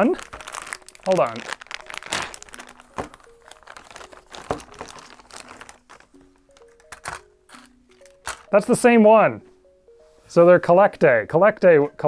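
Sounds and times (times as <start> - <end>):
plastic bag crinkling: 0.0 - 8.6
soft background music: 0.0 - 12.0.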